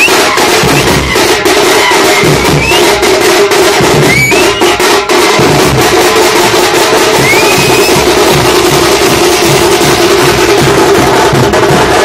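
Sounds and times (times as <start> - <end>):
frame drums beaten with sticks: 0.0 - 12.0.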